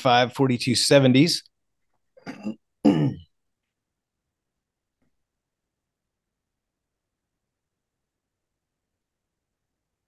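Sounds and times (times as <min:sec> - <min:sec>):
person clearing throat: 0:02.2 - 0:03.3.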